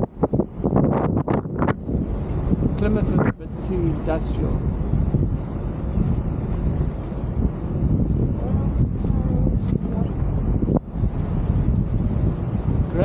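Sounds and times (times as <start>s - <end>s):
boat rumble: 0.0s - 13.0s
wind buffeting microphone: 0.0s - 13.0s.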